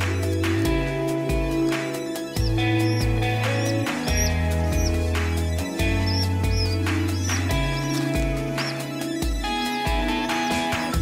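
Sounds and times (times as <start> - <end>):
electronic music: 0.2 - 11.0
high chirping tones: 1.9 - 11.0.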